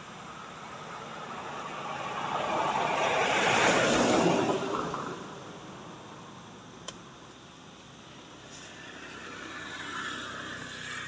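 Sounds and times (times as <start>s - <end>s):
vehicle passing by: 0.3s - 5.3s, 8.7s - 11.0s.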